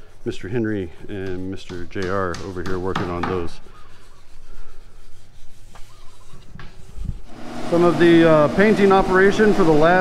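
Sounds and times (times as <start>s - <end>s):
sandpaper scratching on wood: 0.0s - 10.0s.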